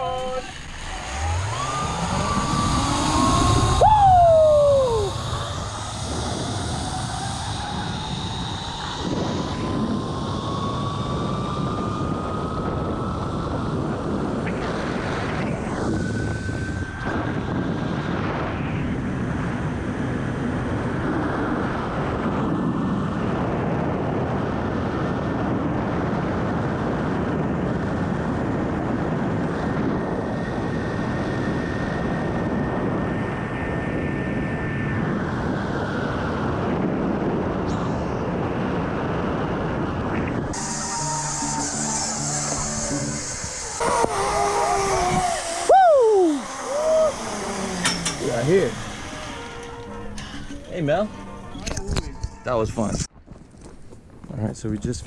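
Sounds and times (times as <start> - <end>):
loud falling tone: 0.0 - 25.4, 29.2 - 53.1
zip line pulley whine: 0.0 - 53.1
wind on microphone: 0.0 - 55.0.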